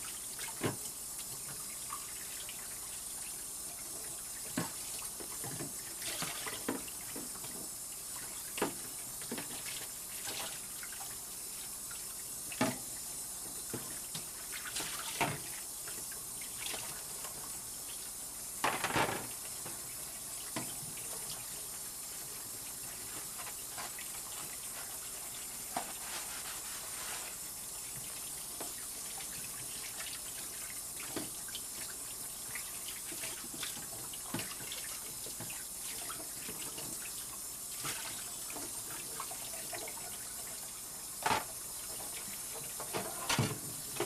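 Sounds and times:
tap running into sink: 18.6s - 19.8s, 41.2s - 44.0s.

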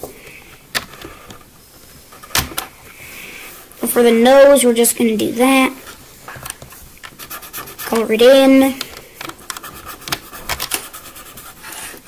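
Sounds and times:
marker pen scratching on paper: 7.1s - 8.2s, 9.4s - 12.0s.

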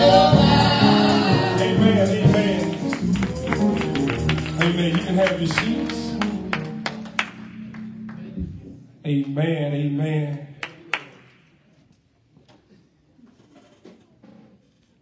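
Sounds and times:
man singing into a microphone: 0.0s - 2.8s
drum kit: 0.0s - 6.8s
keyboard chord: 0.0s - 8.6s
gospel band playing: 0.0s - 10.3s.

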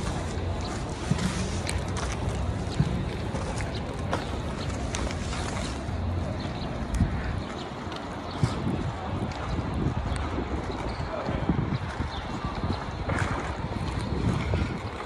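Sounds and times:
faint voices: 0.0s - 15.0s
wind rumbling on microphone: 0.0s - 15.0s.

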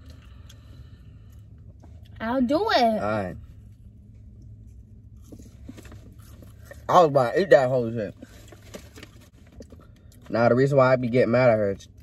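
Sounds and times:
chewing food: 5.2s - 6.9s, 8.2s - 10.3s.

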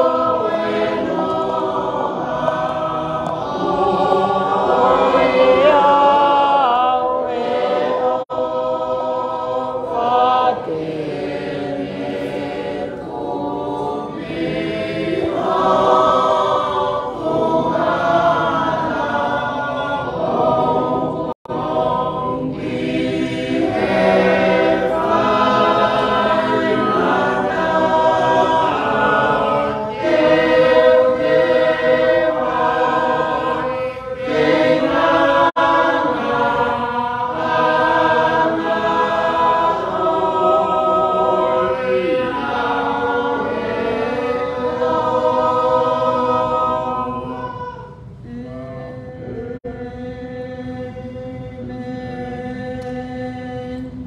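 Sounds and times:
church choir singing a hymn: 0.0s - 54.0s.

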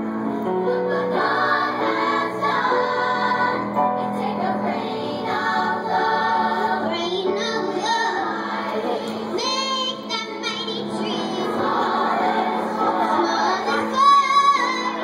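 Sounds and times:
children's choir singing: 0.0s - 15.0s
musical accompaniment: 0.0s - 15.0s.

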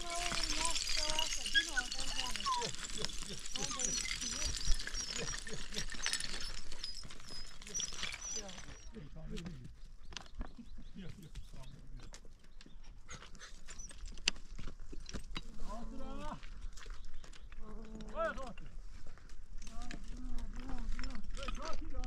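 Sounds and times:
footsteps on rocky ground: 0.0s - 22.0s
dog whining and panting: 0.2s - 9.0s, 12.7s - 14.3s.

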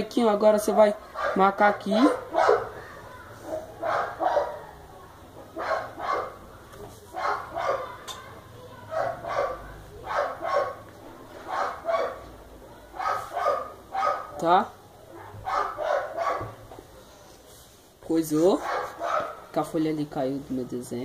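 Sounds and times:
dog barking: 0.7s - 2.8s, 3.4s - 4.8s, 5.6s - 6.4s, 7.1s - 8.0s, 8.9s - 10.9s, 11.5s - 12.3s, 12.9s - 14.4s, 15.1s - 16.6s, 18.6s - 19.5s.

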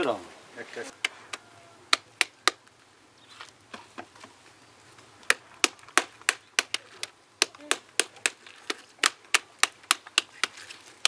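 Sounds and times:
tool smacking pomegranate rind: 1.9s - 2.6s, 5.2s - 10.7s.

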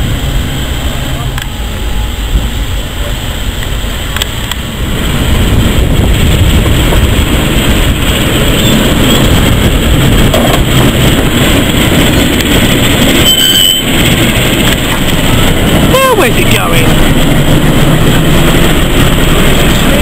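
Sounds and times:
diesel locomotive engine rumble: 0.0s - 20.0s.

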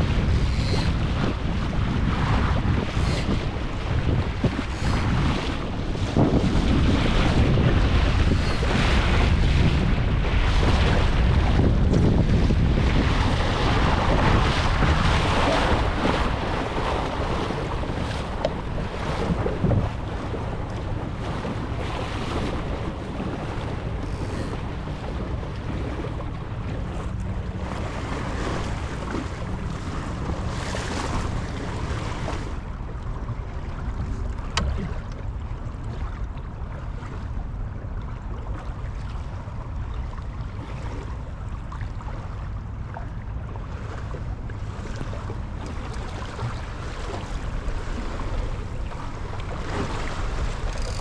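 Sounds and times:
water splashing along boat hull: 0.0s - 51.0s
wind buffeting microphone: 0.0s - 51.0s.

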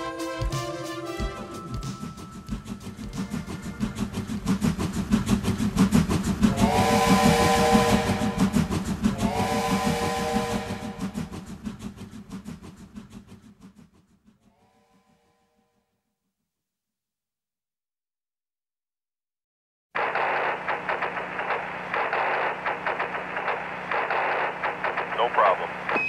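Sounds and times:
steam locomotive chuffing: 0.0s - 15.4s, 20.0s - 26.0s
train whistle blasts: 6.5s - 8.5s, 9.2s - 11.1s.

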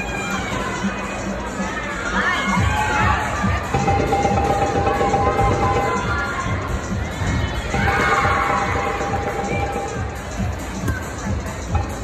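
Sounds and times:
children shouting and cheering: 0.0s - 3.8s, 4.8s - 10.3s.

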